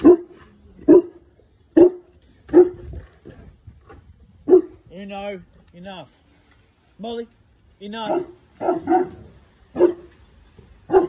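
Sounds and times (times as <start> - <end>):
dog barking: 0.0 - 2.9, 4.4 - 4.8, 8.0 - 10.1.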